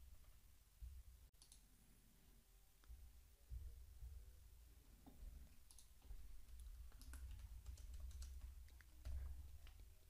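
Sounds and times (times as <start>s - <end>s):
keyboard typing: 5.6s - 10.0s.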